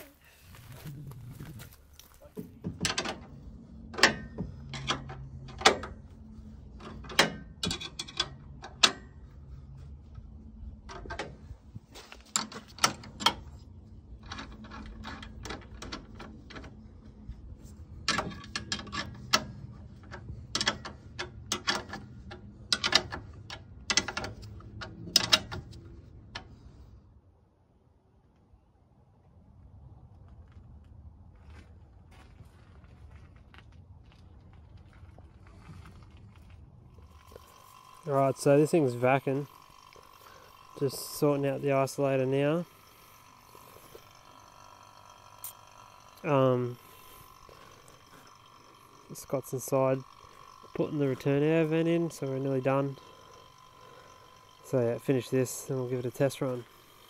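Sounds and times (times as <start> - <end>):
spanner clicking on bolts: 3.9 - 6.1, 6.8 - 9.2, 12.1 - 13.6, 14.2 - 16.8, 18.0 - 26.6, 37.0 - 57.0.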